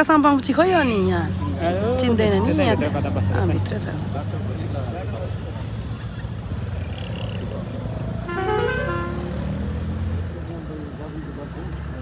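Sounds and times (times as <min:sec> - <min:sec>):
vehicle horn: 0:08.2 - 0:09.5.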